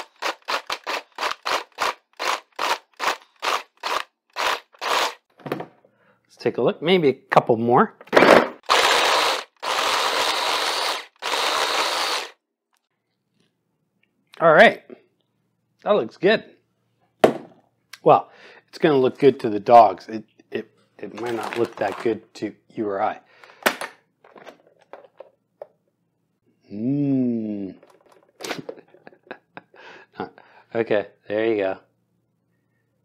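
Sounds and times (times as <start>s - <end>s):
blender grinding meat and bone: 0.0s - 5.2s, 8.6s - 12.4s.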